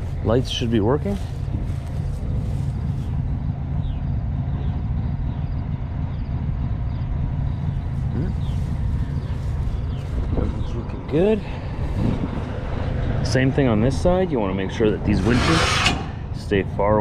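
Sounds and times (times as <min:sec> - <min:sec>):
diesel truck engine idling: 0:00.0 - 0:15.2.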